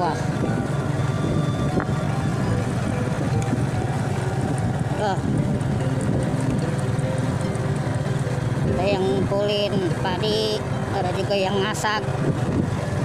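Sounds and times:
small motorcycle engine running: 0.0 - 13.0
wind rumbling on microphone: 0.0 - 13.0.

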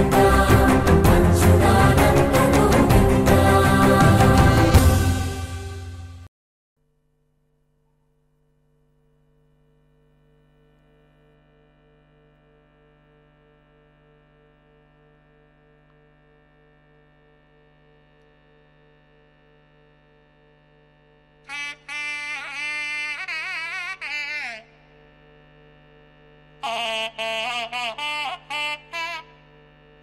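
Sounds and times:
steady reedy drone: 0.0 - 5.8, 21.1 - 30.0
nadaswaram melody: 21.5 - 24.7.

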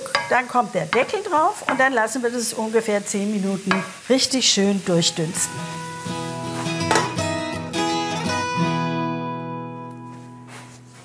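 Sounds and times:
acoustic guitar music: 5.0 - 11.0.

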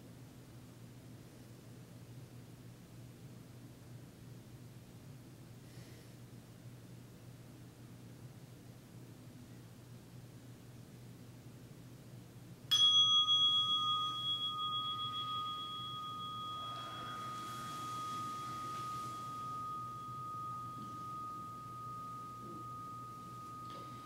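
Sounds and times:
meditation bell ringing: 12.7 - 24.0.

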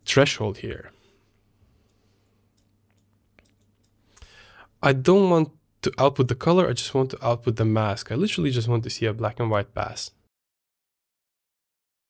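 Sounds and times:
man speaking: 0.0 - 1.0, 4.8 - 10.3
intake of breath: 4.0 - 4.8.

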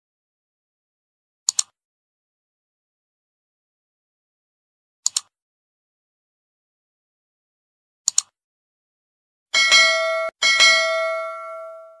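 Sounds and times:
notification bell chime: 9.6 - 12.0.

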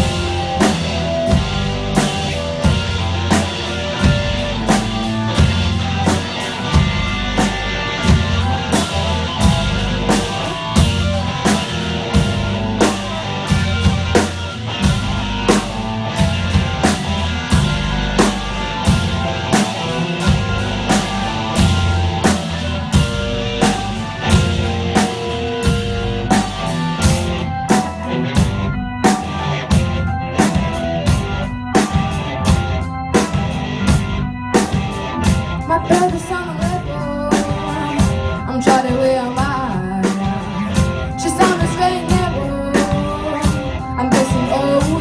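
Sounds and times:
drum kit beat: 0.0 - 45.0
live rock band playing: 0.0 - 45.0.

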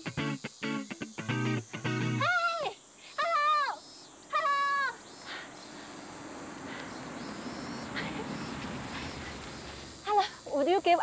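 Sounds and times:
woman shouting: 2.2 - 5.0
van approaching: 5.0 - 11.0.

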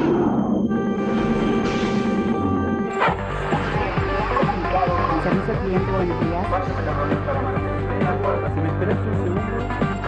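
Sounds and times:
sudden musical hit: 0.0 - 4.7
electronic music with held chords: 0.0 - 10.0.

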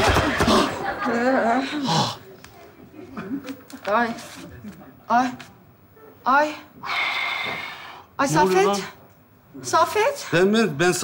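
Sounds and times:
breathy hiss: 6.5 - 9.0.

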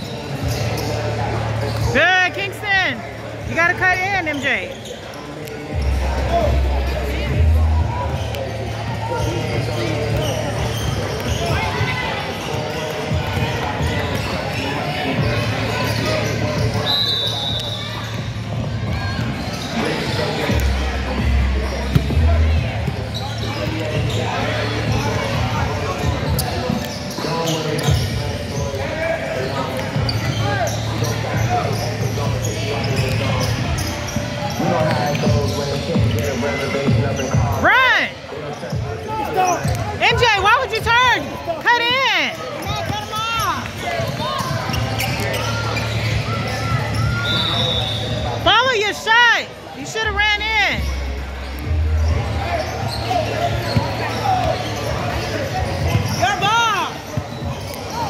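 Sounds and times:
sneakers squealing on court: 0.0 - 2.0, 3.2 - 58.0.

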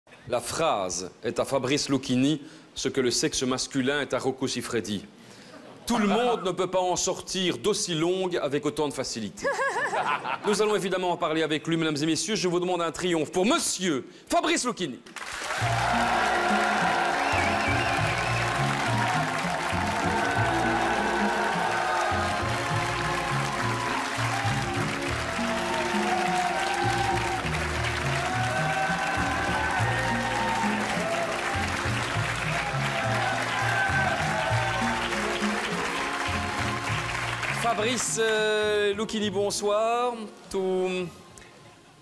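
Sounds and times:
studio audience applauding: 15.0 - 38.7
entrance music: 15.6 - 38.0.

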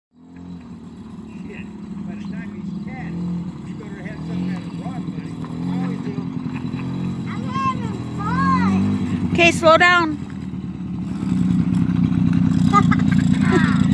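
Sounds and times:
two-stroke quad engine running: 0.1 - 13.9.

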